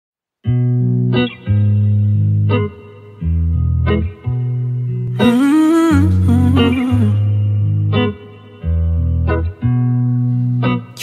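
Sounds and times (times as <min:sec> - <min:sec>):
instrumental chords: 0:00.5 - 0:11.0
person humming: 0:05.2 - 0:07.4.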